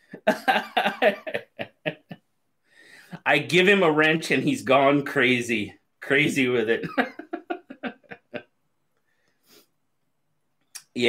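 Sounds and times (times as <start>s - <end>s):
man laughing hard: 0.1s - 2.2s, 6.8s - 8.5s.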